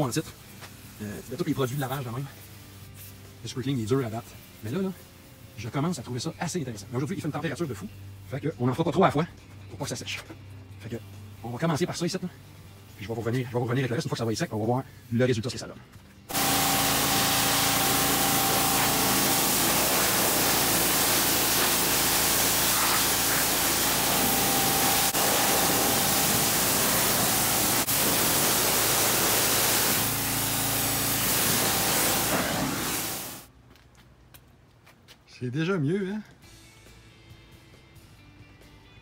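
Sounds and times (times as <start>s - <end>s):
pressure washer spraying water: 16.3s - 33.5s.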